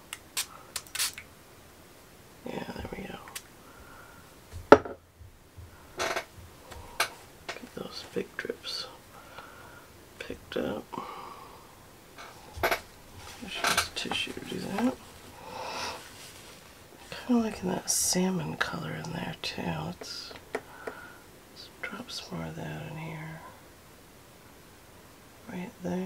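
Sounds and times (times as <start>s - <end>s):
person half-whispering: 2.4s - 3.4s, 21.6s - 23.6s.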